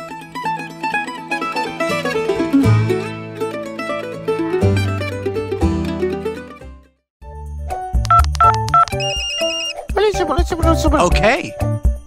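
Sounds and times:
background music with steady beat: 0:07.5 - 0:12.0
high pulsing phone ringtone: 0:08.1 - 0:09.7.

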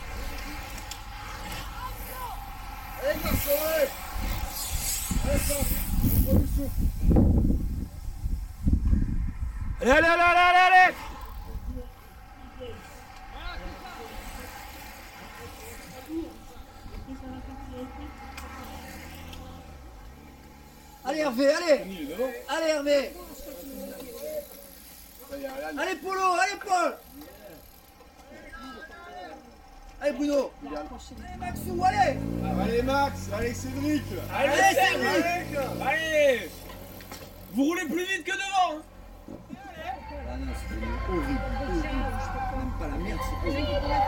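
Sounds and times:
faint outdoor background: 0:00.0 - 0:44.0
spectators shouting encouragement: 0:00.7 - 0:04.5, 0:09.8 - 0:16.5, 0:34.2 - 0:36.5.

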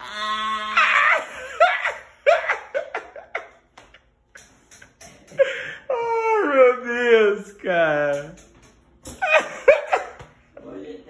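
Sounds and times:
elderly man laughing hard: 0:00.8 - 0:03.6, 0:09.2 - 0:10.2.

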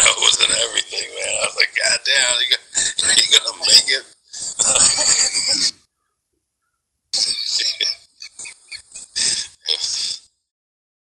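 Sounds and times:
person laughing loudly: 0:04.4 - 0:05.8, 0:07.2 - 0:10.2.

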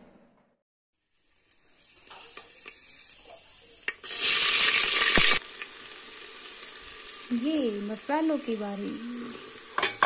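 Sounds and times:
hot oil sizzling: 0:01.0 - 0:10.0.

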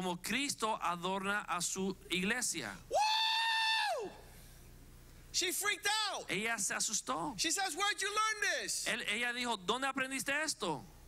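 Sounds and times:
man squealing in falsetto: 0:02.9 - 0:04.2.

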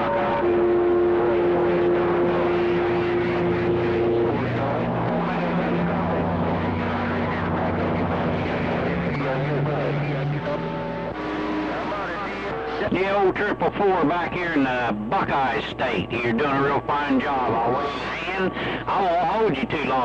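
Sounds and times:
garbled radio voices: 0:00.0 - 0:20.0
radio band noise: 0:00.0 - 0:20.0
whistling radio tones: 0:00.0 - 0:20.0.

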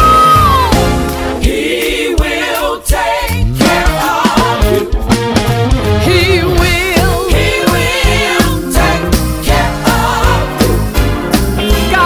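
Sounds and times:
band playing: 0:00.0 - 0:01.9, 0:03.4 - 0:12.0
gospel quartet singing: 0:00.4 - 0:05.0, 0:06.2 - 0:12.0.

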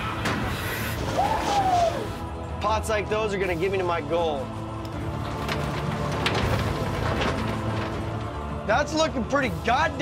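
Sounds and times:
clattering knocks: 0:05.0 - 0:08.6.

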